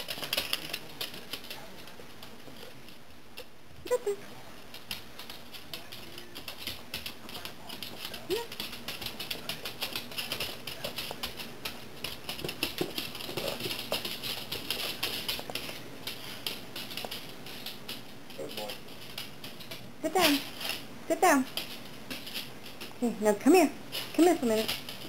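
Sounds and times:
dog claws clicking on wood floor: 0:00.0 - 0:03.5, 0:04.6 - 0:25.0.

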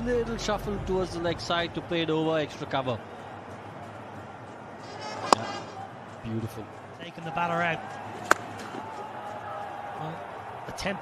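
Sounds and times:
cricket bat striking ball: 0:08.2 - 0:08.9.

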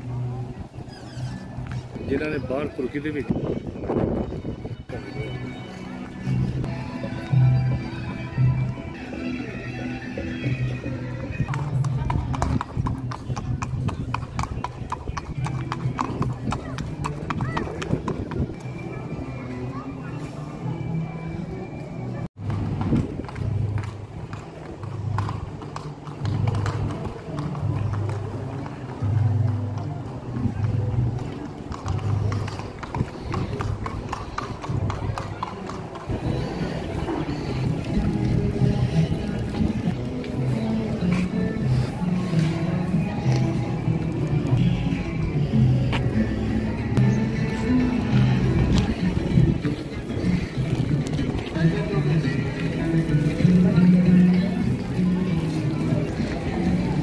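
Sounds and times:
background music: 0:02.1 - 0:57.0
horse hooves clip-clopping on asphalt: 0:10.4 - 0:19.3, 0:22.4 - 0:46.2, 0:47.0 - 0:57.0
voices: 0:26.7 - 0:57.0.

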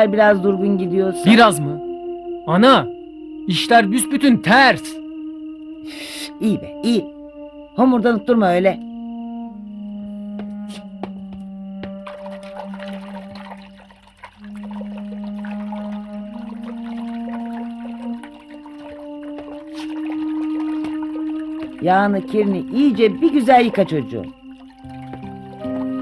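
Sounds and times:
soft music of held notes: 0:00.0 - 0:26.0
water running from a tap: 0:12.0 - 0:26.0.

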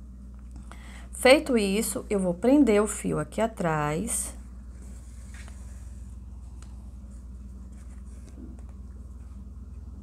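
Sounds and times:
steady low hum: 0:00.0 - 0:10.0
hands working yarn: 0:04.7 - 0:10.0.

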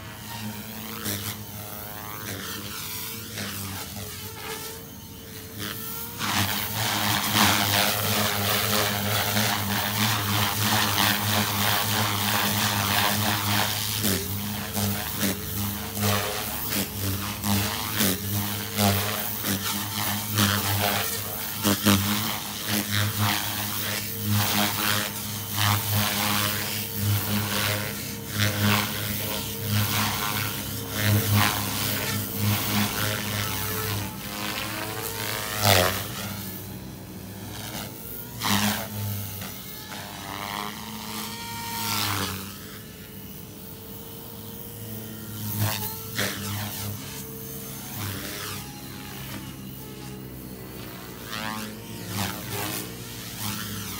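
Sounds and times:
rc helicopter rotor and motor hum: 0:00.0 - 0:53.9.

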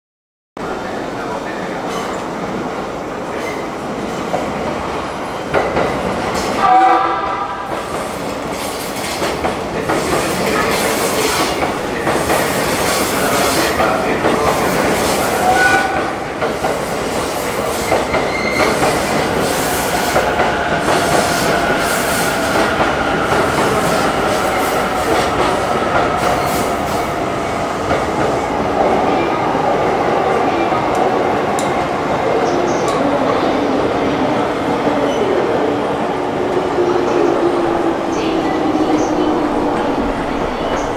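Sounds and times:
high whine of train: 0:00.6 - 0:40.9
train horn blast: 0:06.6 - 0:07.7, 0:15.4 - 0:16.2.

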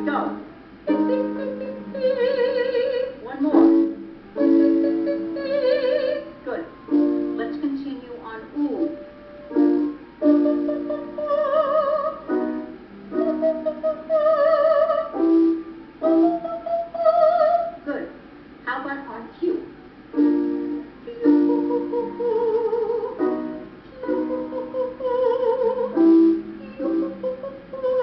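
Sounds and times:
keyboard accompaniment: 0:00.0 - 0:18.0, 0:19.0 - 0:28.0
woman singing vocal exercise: 0:21.0 - 0:23.2.

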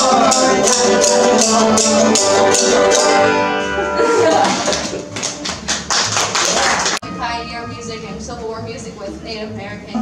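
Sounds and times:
string band tune: 0:00.0 - 0:10.0
audience applause: 0:04.3 - 0:07.0.

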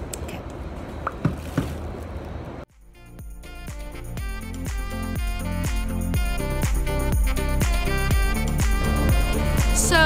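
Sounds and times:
electronic background music: 0:02.7 - 0:10.0.

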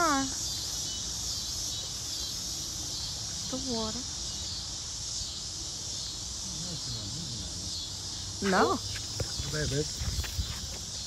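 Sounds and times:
insects chorus: 0:00.0 - 0:11.0.

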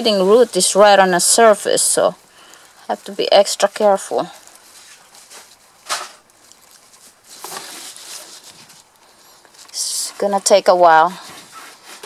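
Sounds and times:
fingers scratching through soil: 0:03.0 - 0:12.0.

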